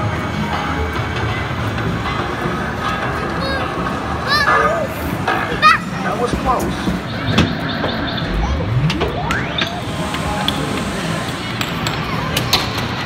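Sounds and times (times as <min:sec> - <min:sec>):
electronic game machine sounds: 0:07.0 - 0:11.1
rising electronic sweep: 0:07.2 - 0:10.7.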